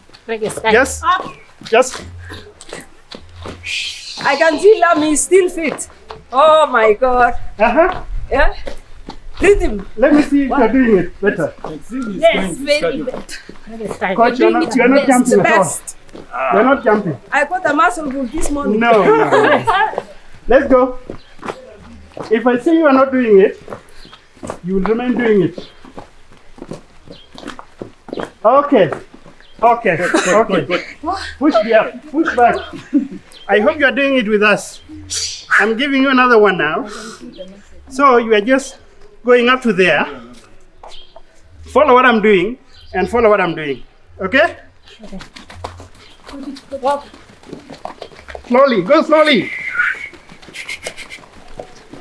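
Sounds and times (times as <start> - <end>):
footsteps on grass: 0.0 - 35.6, 45.1 - 52.0
scuffing and rustling movement: 0.0 - 35.8, 44.7 - 52.0.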